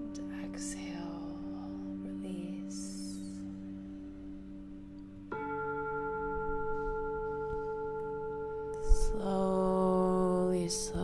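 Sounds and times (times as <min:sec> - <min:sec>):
ambient bell-like tones: 0:00.0 - 0:11.0.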